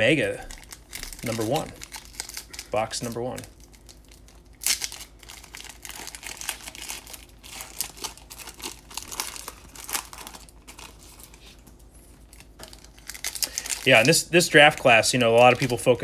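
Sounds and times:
foil wrapper tearing and crinkling: 0:00.4 - 0:16.0.

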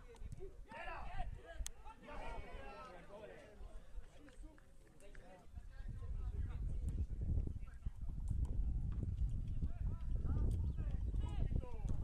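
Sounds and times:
footballers shouting: 0:00.7 - 0:03.0.

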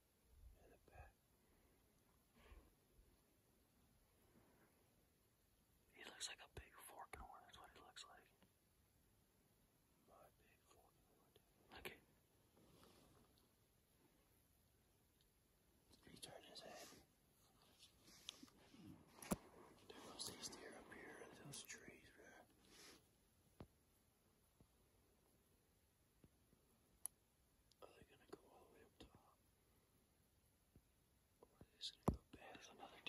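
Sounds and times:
faint whispering: 0:00.4 - 0:01.8, 0:05.9 - 0:08.5, 0:10.0 - 0:13.4, 0:15.9 - 0:23.0, 0:27.7 - 0:29.5, 0:31.4 - 0:33.0.

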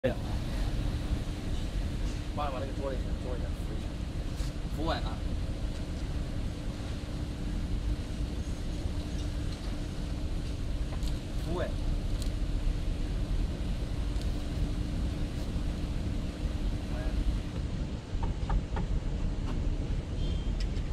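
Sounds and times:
faint steady hum: 0:00.0 - 0:20.9
low background rumble: 0:00.0 - 0:20.9.

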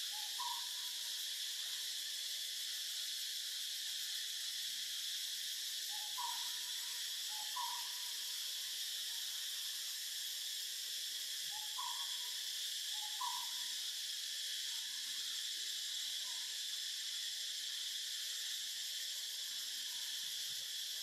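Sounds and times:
insect drone: 0:00.0 - 0:21.0.

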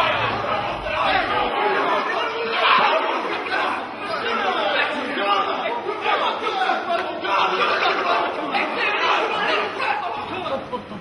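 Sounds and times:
men's voices chattering: 0:00.0 - 0:11.0.

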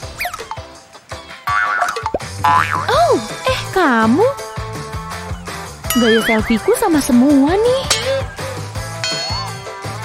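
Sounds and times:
light background music: 0:00.0 - 0:10.0
scattered plinks: 0:05.9 - 0:06.7, 0:09.0 - 0:09.8.

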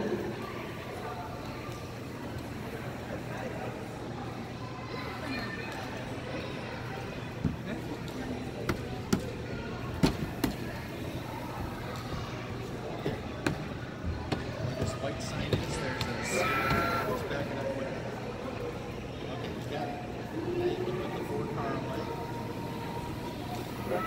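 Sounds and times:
murmur of distant voices: 0:00.0 - 0:24.0.

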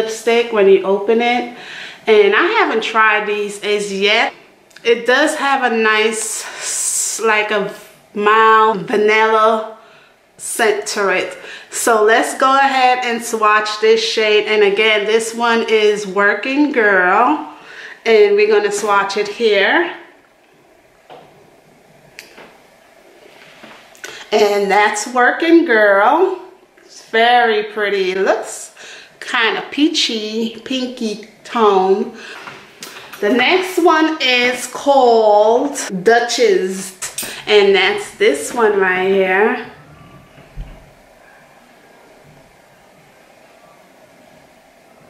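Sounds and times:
faint steady hiss: 0:00.0 - 0:45.0.

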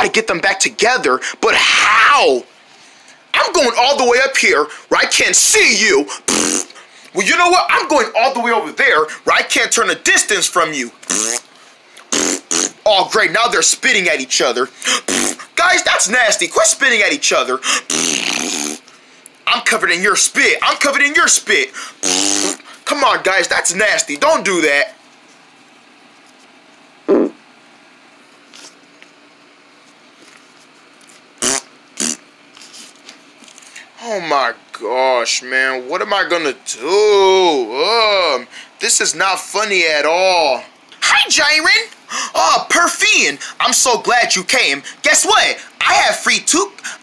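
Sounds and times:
hissing spit sound: 0:06.1 - 0:06.8, 0:11.0 - 0:12.8, 0:14.8 - 0:15.6, 0:17.7 - 0:18.8, 0:21.7 - 0:22.8, 0:27.1 - 0:27.4, 0:31.4 - 0:32.2
mouth raspberry: 0:06.1 - 0:06.8, 0:11.0 - 0:12.9, 0:14.8 - 0:15.6, 0:17.6 - 0:18.9, 0:21.7 - 0:22.8, 0:27.1 - 0:27.4, 0:31.0 - 0:32.3.

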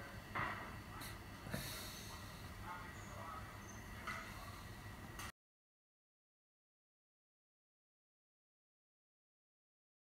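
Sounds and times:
faint room hum: 0:00.0 - 0:05.3
sharp breath out through nose: 0:01.5 - 0:02.5.

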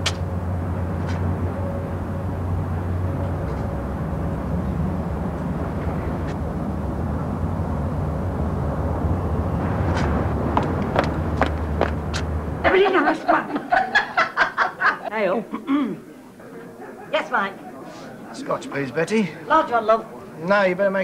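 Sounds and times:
low outdoor rumble: 0:00.0 - 0:15.2
footsteps on cobbles: 0:09.9 - 0:12.3.

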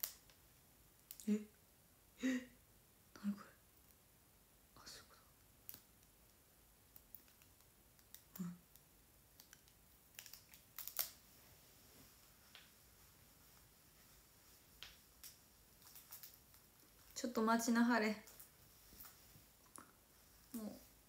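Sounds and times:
hands handling small objects: 0:05.7 - 0:11.2, 0:14.8 - 0:17.2, 0:18.2 - 0:19.2.

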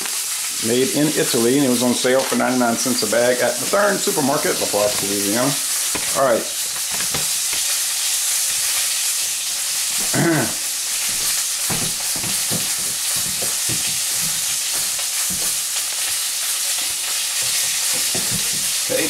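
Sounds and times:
sausage sizzling in a pan: 0:00.0 - 0:19.0
fat popping: 0:05.8 - 0:07.8, 0:09.7 - 0:19.0.

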